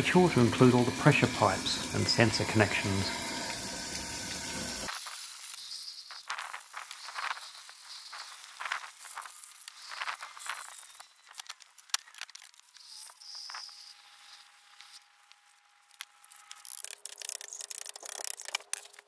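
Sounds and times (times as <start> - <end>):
water rushing into a tub: 0.0 - 4.9
water spattering and dripping: 0.0 - 4.9.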